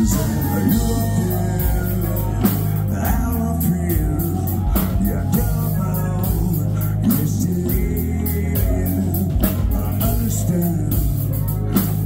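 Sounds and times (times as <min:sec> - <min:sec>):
bass guitar: 0:00.0 - 0:12.0
drum kit with cymbals: 0:00.0 - 0:12.0
electric guitar: 0:00.0 - 0:12.0
male lead vocal: 0:00.0 - 0:12.0.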